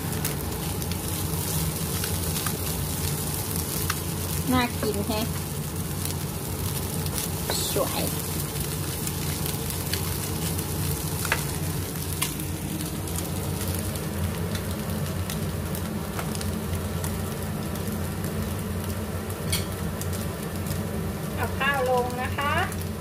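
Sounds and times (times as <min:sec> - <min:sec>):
food sizzling in a frying pan: 0:00.0 - 0:23.0
steady low hum: 0:00.0 - 0:23.0.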